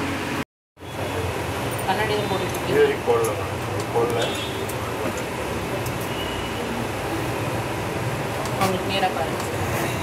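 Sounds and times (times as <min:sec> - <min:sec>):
air conditioning and fans humming: 0:00.0 - 0:10.0.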